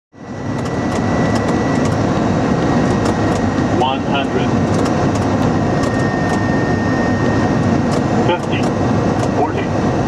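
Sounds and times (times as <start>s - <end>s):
aircraft cockpit noise: 0.1s - 10.0s.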